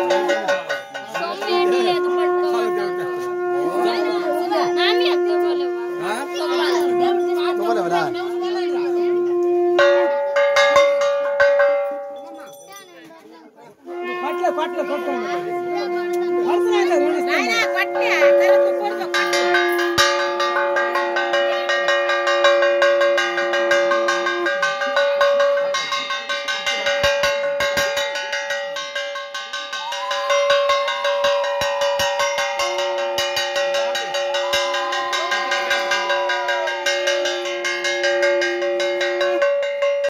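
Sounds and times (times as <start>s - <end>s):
hand bells ringing rapidly: 0.0s - 9.1s, 9.8s - 13.5s, 14.2s - 40.0s
lower bell tone: 0.0s - 40.0s.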